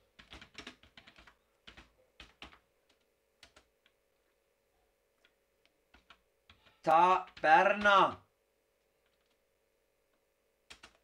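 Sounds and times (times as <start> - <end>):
faint computer keyboard typing: 0.0 - 4.4, 5.1 - 9.4, 10.1 - 11.0.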